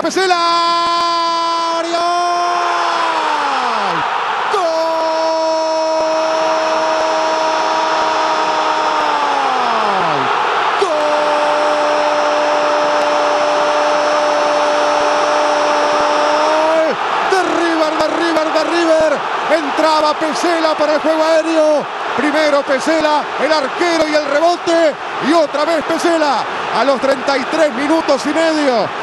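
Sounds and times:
crowd noise: 0:00.0 - 0:29.0
man shouting drawn-out goal cry: 0:00.0 - 0:29.0
excited shouting: 0:00.2 - 0:29.0.

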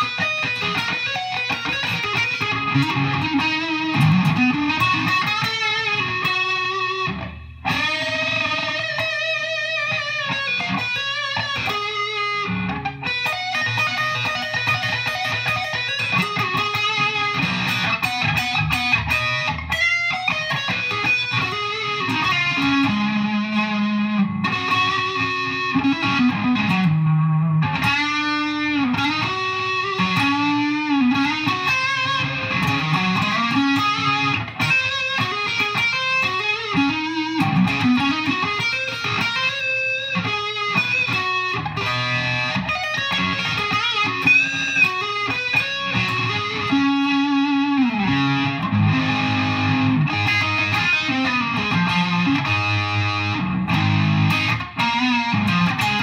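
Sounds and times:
distorted electric guitar lead: 0:00.0 - 0:56.0.

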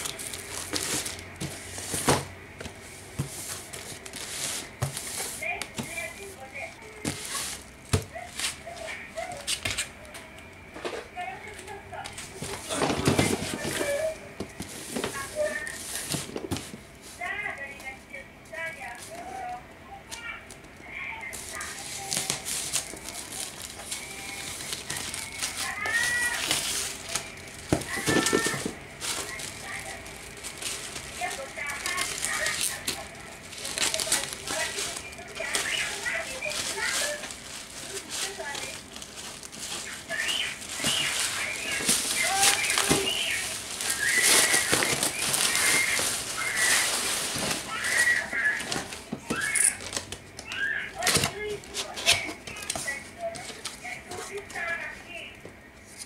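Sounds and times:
plastic wrap crinkling: 0:00.0 - 0:56.0.

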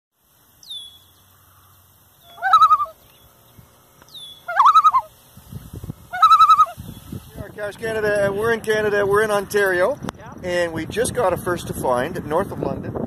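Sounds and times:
low warbling bird call: 0:00.5 - 0:07.4
high falling bird whistle: 0:00.6 - 0:01.2, 0:02.2 - 0:03.2, 0:04.1 - 0:05.1.

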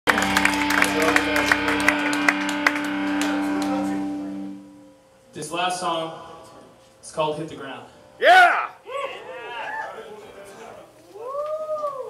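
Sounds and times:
crowd clapping and cheering: 0:00.0 - 0:04.3
electric guitar chord ringing: 0:00.1 - 0:06.6.

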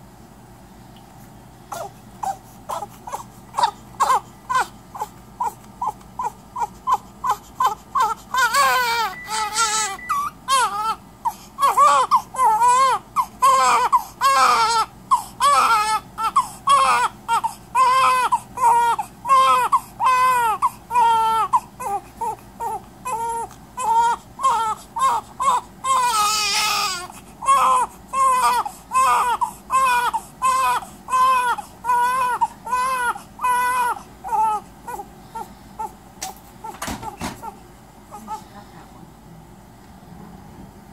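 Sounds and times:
newborn baby crying: 0:01.7 - 0:36.0, 0:36.6 - 0:38.5.

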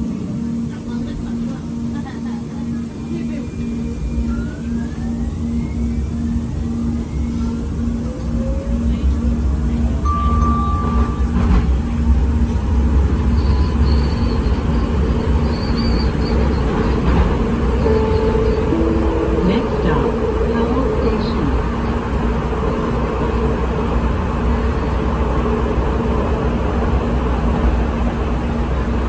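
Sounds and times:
traction motors whining: 0:00.0 - 0:25.3
wheels rumbling on rails: 0:00.0 - 0:29.0.

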